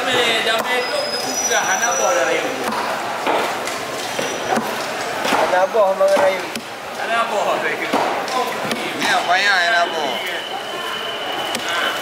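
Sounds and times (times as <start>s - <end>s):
people talking: 0.0s - 3.5s, 4.2s - 12.0s
cleaver chopping on wooden block: 4.2s - 6.7s.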